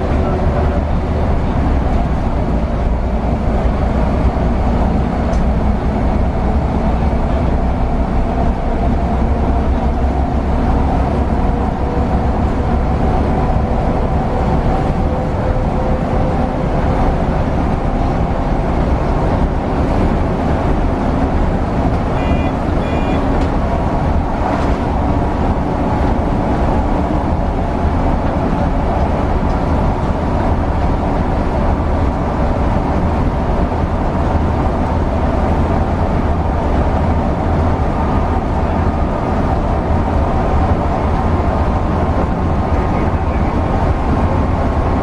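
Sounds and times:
bus engine and tyres rumbling: 0.0 - 45.0.

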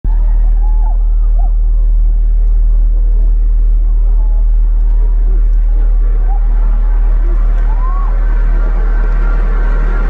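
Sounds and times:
deep bass drone: 0.0 - 10.0
crowd voices: 0.1 - 10.0.

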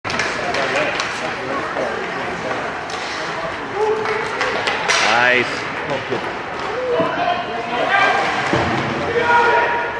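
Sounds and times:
hockey sticks clacking on puck: 0.1 - 7.3
spectators' voices echoing: 0.1 - 9.9.

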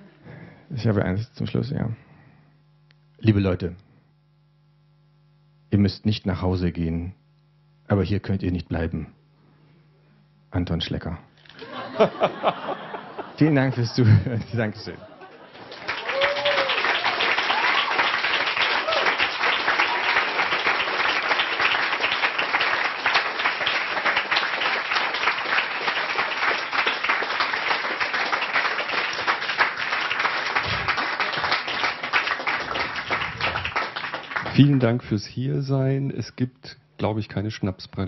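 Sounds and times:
audience applauding: 15.2 - 35.0.

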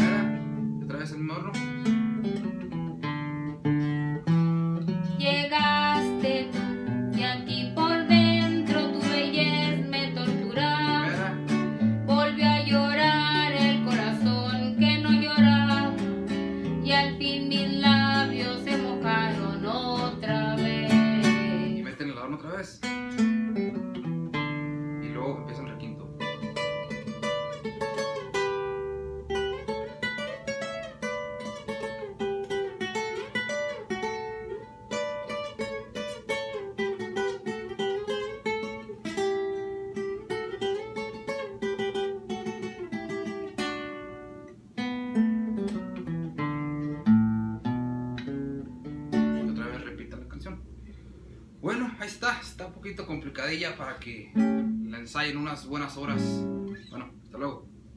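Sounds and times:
twelve-string acoustic guitar: 0.0 - 57.1.

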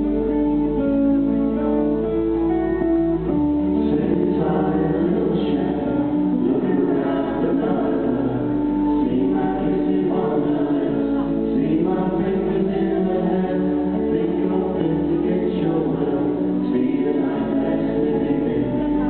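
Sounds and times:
acoustic guitar: 0.0 - 19.0
voices singing in harmony: 1.6 - 19.0.

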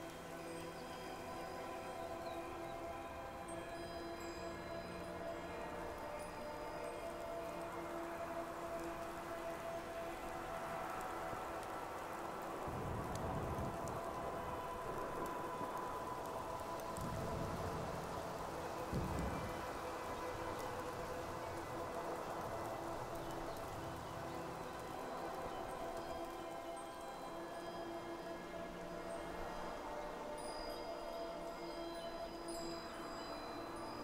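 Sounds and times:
soft ambient music: 0.0 - 34.0.

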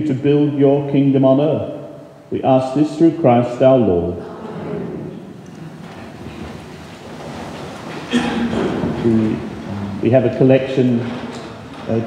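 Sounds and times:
person speaking prayers: 0.0 - 4.3, 9.0 - 11.1
church background noise: 0.0 - 12.0.

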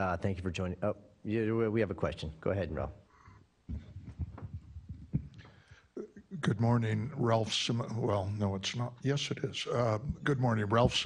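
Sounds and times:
muffled thumps on microphone: 3.7 - 5.6, 10.0 - 11.0.

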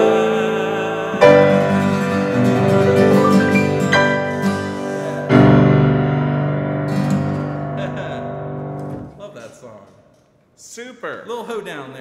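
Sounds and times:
grand piano chord ringing: 0.0 - 9.1.

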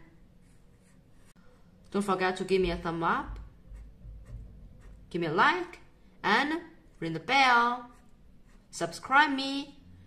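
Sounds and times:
marker drawing on paper: 0.4 - 1.4, 3.3 - 5.3, 7.5 - 9.1.

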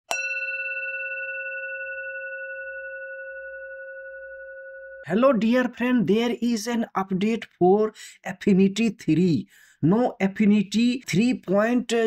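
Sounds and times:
bell-like chime: 0.1 - 5.1.

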